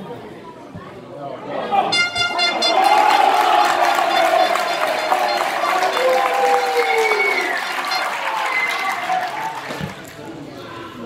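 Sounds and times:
long sliding horn tones: 2.0s - 8.1s
crowd clapping and shouting: 2.1s - 10.5s.

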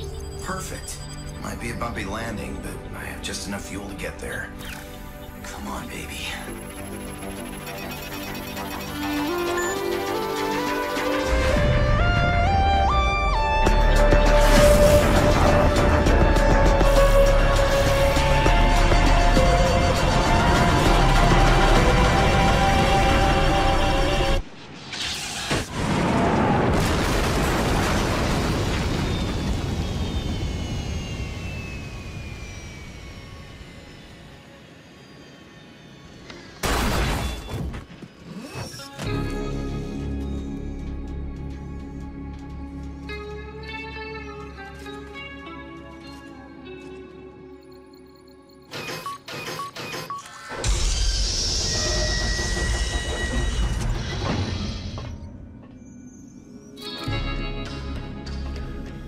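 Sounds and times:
short electronic beeps: 0.0s - 2.0s, 6.4s - 10.4s, 47.4s - 50.6s
background music: 0.0s - 24.5s, 38.6s - 49.7s, 56.5s - 59.0s
explosive crash impact: 25.2s - 30.5s
faint falling whine: 28.0s - 38.8s.

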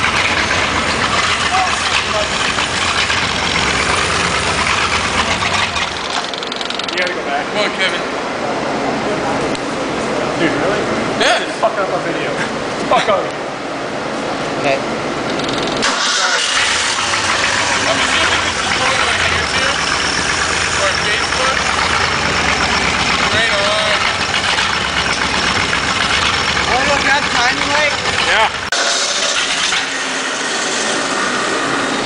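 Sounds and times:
car engine starting and running: 0.0s - 11.2s, 12.6s - 32.0s.

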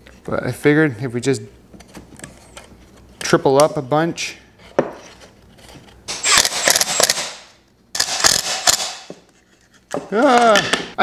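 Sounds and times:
impact driver hammering rattle: 6.1s - 9.1s.

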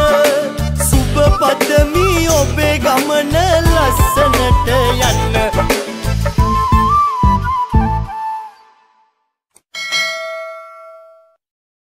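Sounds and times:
song with backing: 0.0s - 9.0s
bright bell-like ding: 9.8s - 11.4s.

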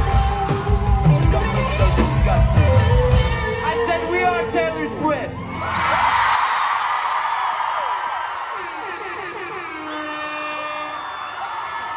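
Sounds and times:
audience cheering and screaming: 0.0s - 11.9s.

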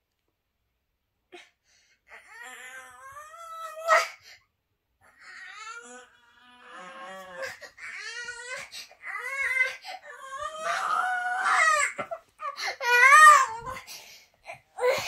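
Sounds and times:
young boy crying: 5.2s - 15.0s.

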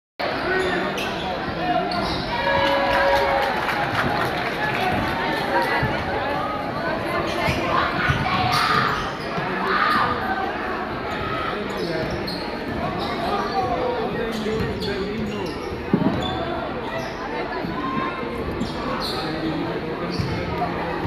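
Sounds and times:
crowd chatter: 0.2s - 21.0s.

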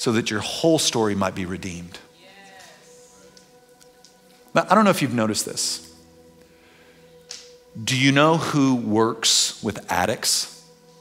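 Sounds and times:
man speaking: 0.0s - 2.1s, 4.5s - 6.0s, 7.8s - 10.6s
soft keyboard background music: 0.0s - 11.0s.

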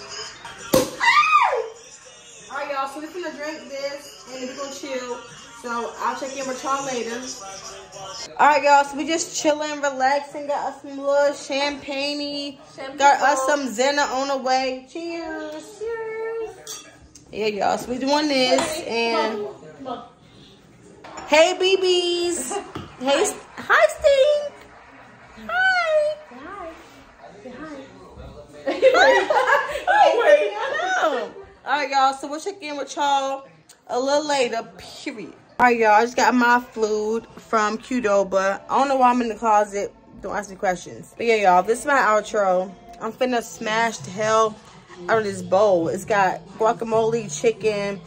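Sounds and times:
champagne cork popping: 0.7s - 1.1s
woman squealing: 1.0s - 1.7s.

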